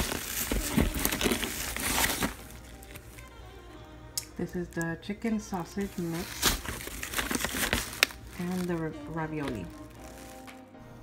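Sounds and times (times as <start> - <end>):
plastic packaging crinkling: 0.0 - 10.7
faint background music: 0.0 - 11.0.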